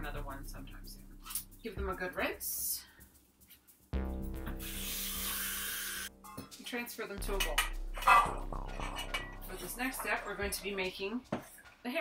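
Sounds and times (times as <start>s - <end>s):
tap water running: 4.5s - 6.1s.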